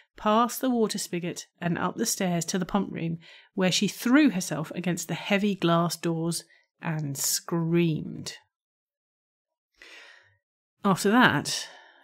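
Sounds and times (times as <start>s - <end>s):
woman speaking: 0.2s - 8.4s, 10.9s - 11.8s
soft breath: 9.8s - 10.4s.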